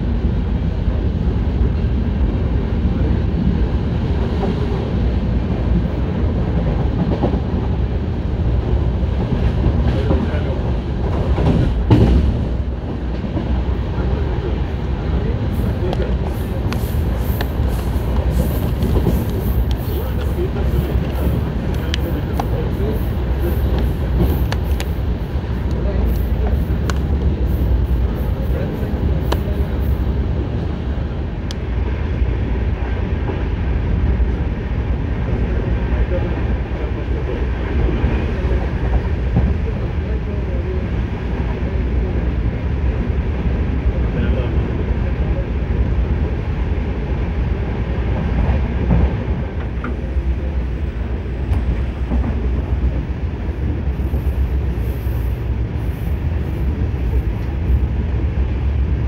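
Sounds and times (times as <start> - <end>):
train wheels rumbling on rails: 0.0 - 59.0
sharp rail clicks: 15.8 - 30.0.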